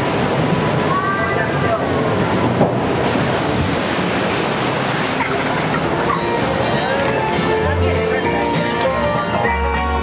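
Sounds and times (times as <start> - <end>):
water rushing and splashing: 0.0 - 9.7.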